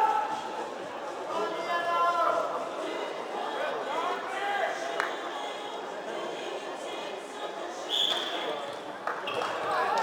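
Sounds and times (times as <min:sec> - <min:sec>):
voices echoing in a hall: 0:00.0 - 0:10.0
referee's whistle: 0:07.9 - 0:08.4.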